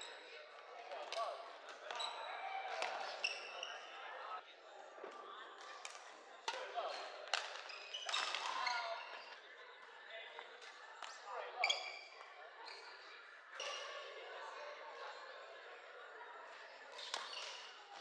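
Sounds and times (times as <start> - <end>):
voices echoing in a hall: 0.0 - 18.0
shoe squeaks: 7.7 - 9.3, 11.6 - 13.0.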